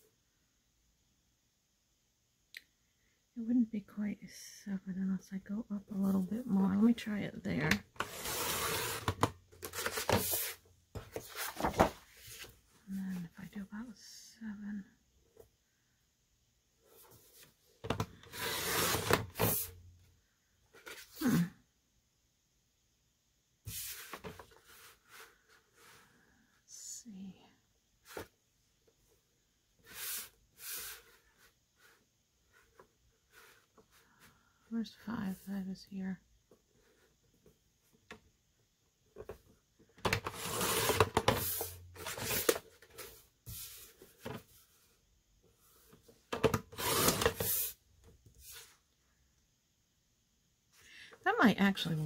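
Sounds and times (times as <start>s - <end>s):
paper rustling: 8.3s - 12.5s.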